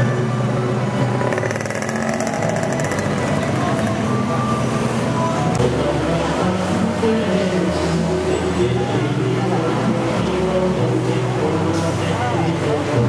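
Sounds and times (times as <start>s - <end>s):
crowd voices: 0.0s - 13.0s
music: 0.0s - 13.0s
rapid rattle: 1.2s - 3.6s.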